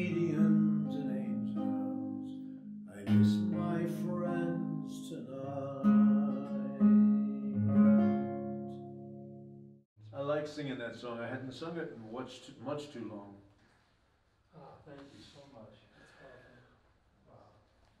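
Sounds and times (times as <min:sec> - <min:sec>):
man singing ballad: 0:00.0 - 0:02.3, 0:02.9 - 0:08.0
classical guitar chords: 0:00.0 - 0:09.8.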